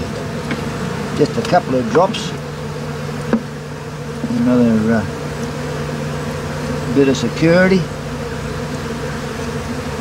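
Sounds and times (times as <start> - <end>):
honeybees humming: 0.0 - 10.0.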